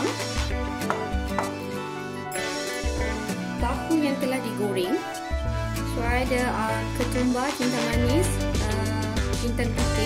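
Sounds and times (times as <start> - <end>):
background music with chords and bass: 0.0 - 10.0.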